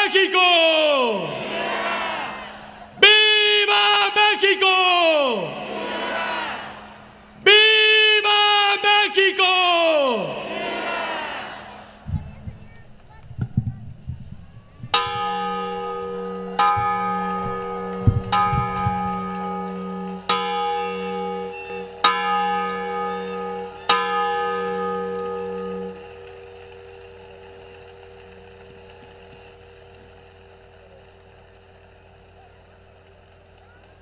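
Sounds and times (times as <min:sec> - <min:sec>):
large bronze bell ringing: 0:11.7 - 0:30.8.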